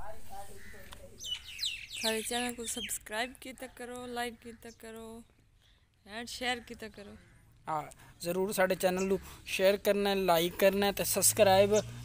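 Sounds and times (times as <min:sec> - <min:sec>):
small birds chirping: 0:00.2 - 0:10.4, 0:11.1 - 0:12.0.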